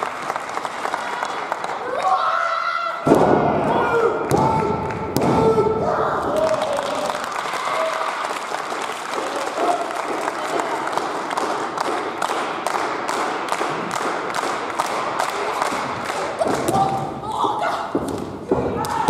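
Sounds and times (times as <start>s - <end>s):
audience applauding: 0.0s - 2.1s, 6.2s - 16.9s
audience clapping in unison: 0.0s - 2.1s, 6.2s - 17.0s.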